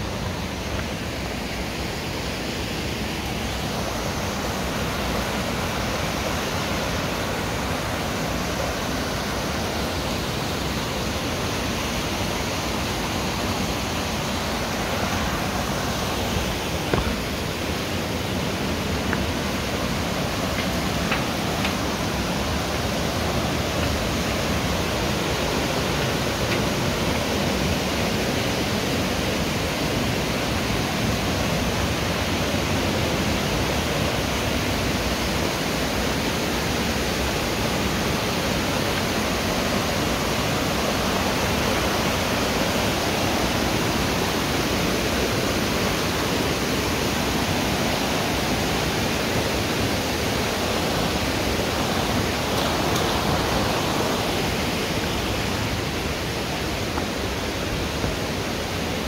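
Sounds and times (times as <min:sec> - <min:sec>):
shallow stream flowing: 0:00.0 - 0:59.0
small waterfall rushing: 0:00.0 - 0:59.0.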